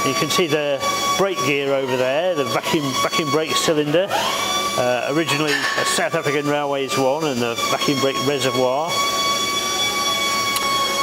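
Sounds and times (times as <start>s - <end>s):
workshop machinery running: 0.0s - 11.0s.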